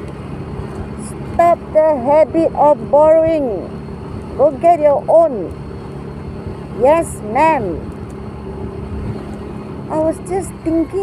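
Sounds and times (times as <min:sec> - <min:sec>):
road and wind noise: 0:00.0 - 0:11.0
small motorcycle engine running: 0:00.3 - 0:11.0.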